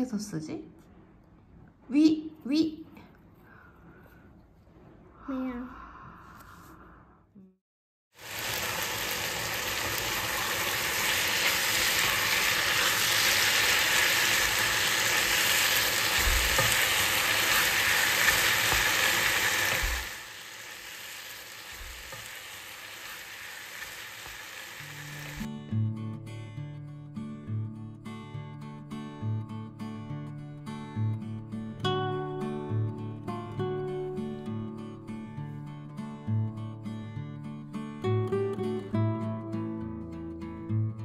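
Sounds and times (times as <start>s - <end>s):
stir-fry sizzling in a frying pan: 8.1s - 25.5s
wooden spatula turning food: 9.8s - 20.2s
acoustic guitar music: 24.8s - 41.0s.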